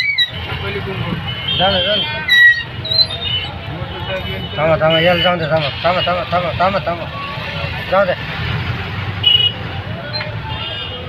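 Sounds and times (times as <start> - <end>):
crowd voices: 0.0 - 11.0
road traffic rumble: 0.0 - 11.0.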